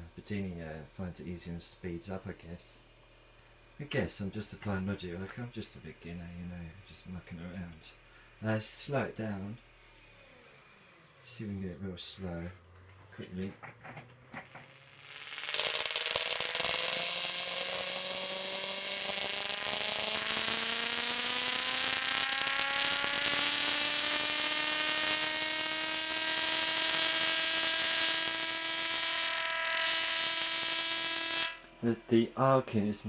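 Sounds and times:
tesla coil arc buzzing: 8.5s - 32.6s.

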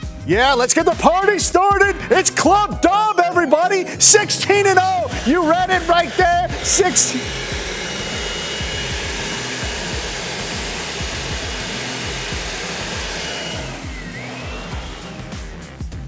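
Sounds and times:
background music with beat: 0.0s - 16.0s
vacuum cleaner whine: 4.6s - 16.0s.

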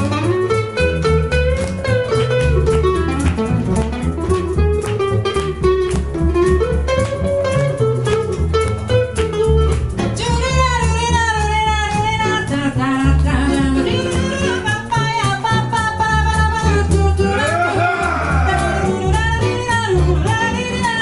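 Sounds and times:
archtop guitar melody: 0.0s - 21.0s
cajon beats: 0.0s - 21.0s
plucked double bass: 0.0s - 21.0s.

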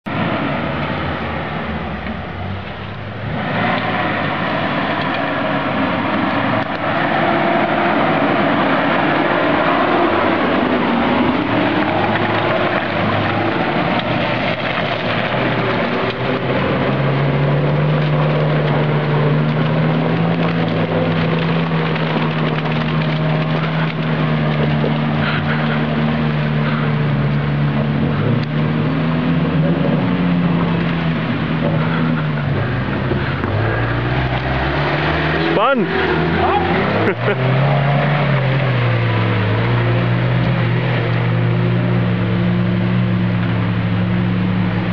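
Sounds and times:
car engine under load: 0.0s - 44.9s.

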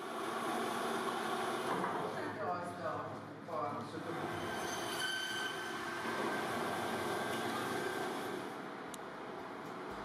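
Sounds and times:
machinery running: 3.9s - 9.5s.

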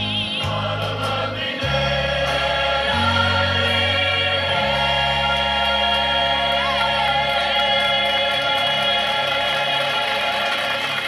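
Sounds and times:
musical accompaniment: 0.0s - 11.0s.

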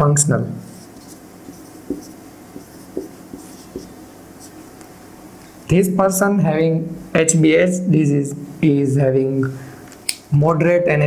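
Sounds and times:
marker writing on whiteboard: 0.6s - 4.6s.

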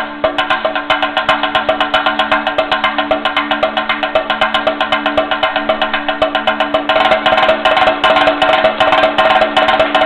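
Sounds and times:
drum struck with a stick: 0.0s - 10.0s
steady held note: 0.0s - 10.0s.

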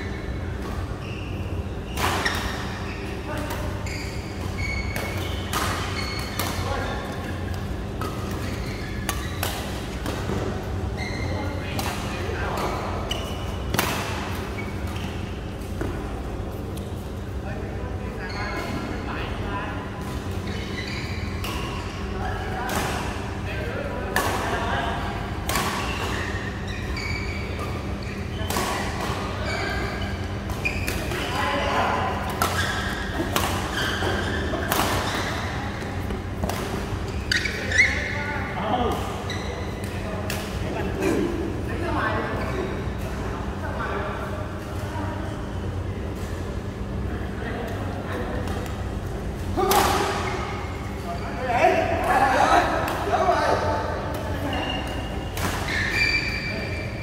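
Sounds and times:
shoes squeaking on court floor: 0.0s - 17.4s, 18.1s - 19.3s, 20.0s - 22.6s, 25.6s - 41.4s, 53.4s - 57.0s.

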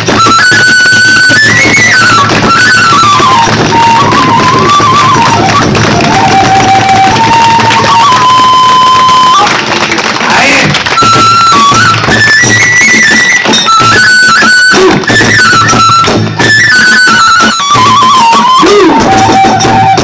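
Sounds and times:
bamboo flute melody: 0.0s - 9.8s, 10.8s - 20.0s.

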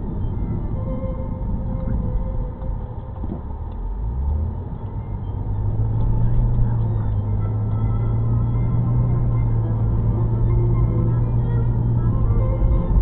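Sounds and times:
road and engine rumble: 0.0s - 13.0s.

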